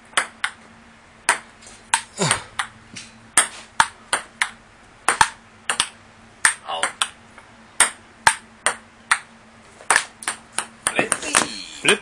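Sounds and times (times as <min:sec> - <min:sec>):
ping pong ball clicking off paddles: 0:00.1 - 0:00.6, 0:01.3 - 0:02.8, 0:03.4 - 0:07.2, 0:07.8 - 0:11.5.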